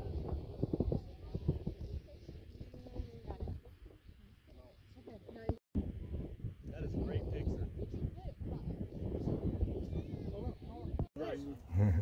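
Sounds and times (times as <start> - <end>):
wind rumble on microphone: 0.0 - 4.5, 5.1 - 11.2
faint indistinct talking: 0.4 - 6.2.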